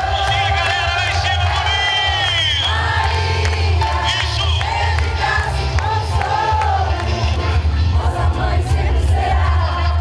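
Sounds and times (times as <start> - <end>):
crowd singing along: 0.0 - 10.0
loud music with low bass: 0.0 - 10.0.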